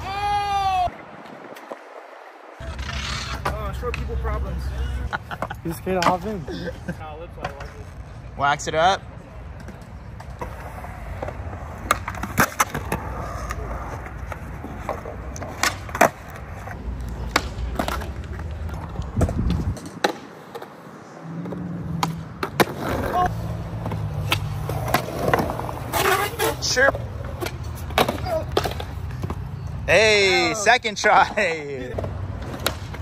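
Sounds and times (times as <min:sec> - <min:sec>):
skateboard wheels rumbling on concrete: 0:00.0 - 0:30.6, 0:31.2 - 0:33.0
skateboard clacking on ground: 0:01.1 - 0:04.4, 0:05.3 - 0:06.4, 0:09.5 - 0:20.8, 0:21.4 - 0:29.5, 0:31.8 - 0:33.0.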